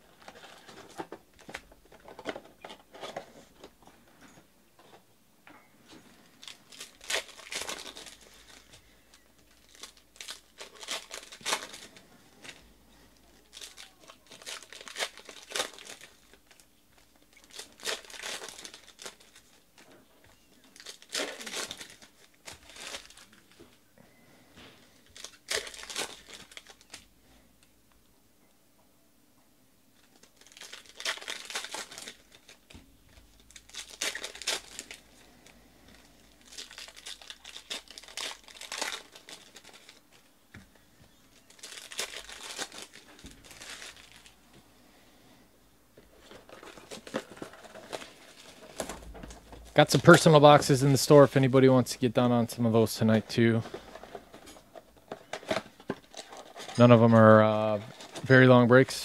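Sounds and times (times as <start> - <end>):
foil wrappers crinkling and tearing: 0.0 - 3.7, 6.2 - 27.1, 30.0 - 40.5, 41.1 - 44.4, 46.0 - 59.0.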